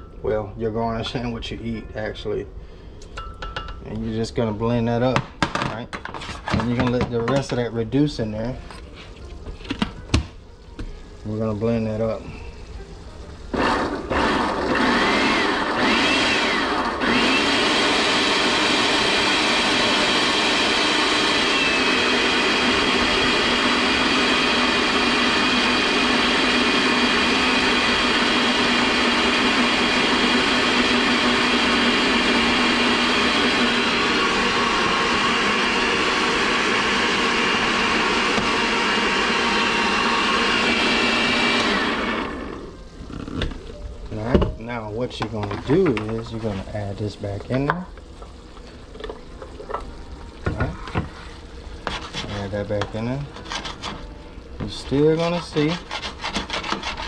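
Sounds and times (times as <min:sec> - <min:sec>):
blender running: 0:13.5 - 0:43.5.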